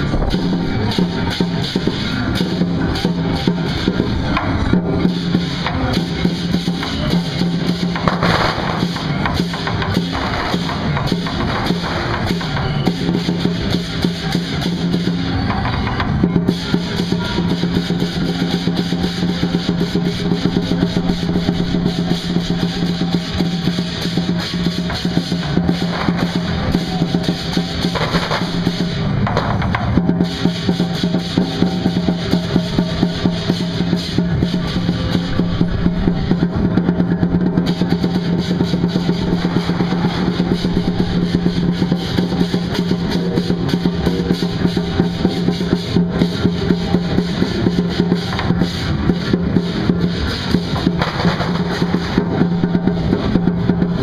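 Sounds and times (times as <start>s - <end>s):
cymbals clashing: 0.0s - 54.0s
large drum roll: 0.0s - 54.0s.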